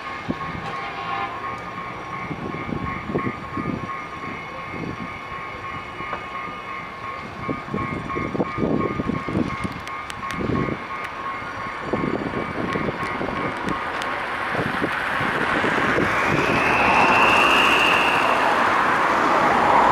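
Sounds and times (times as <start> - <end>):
high train whine: 0.0 - 19.9
train running over rails: 0.0 - 19.9.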